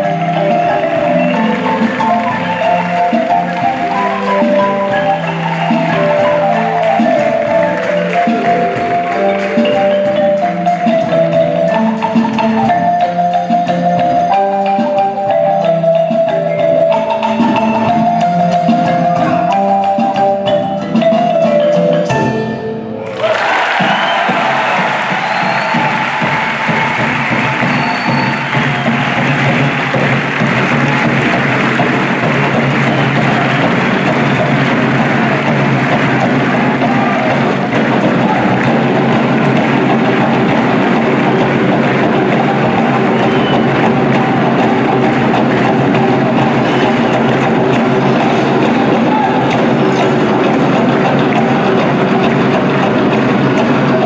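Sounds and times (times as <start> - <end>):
audience applauding and cheering: 0.0 - 13.0, 23.0 - 54.0
music: 0.0 - 54.0.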